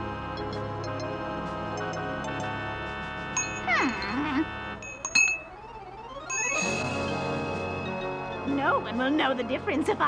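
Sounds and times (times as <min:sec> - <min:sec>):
cartoon music chiming tones: 0:00.3 - 0:02.6, 0:03.4 - 0:09.4.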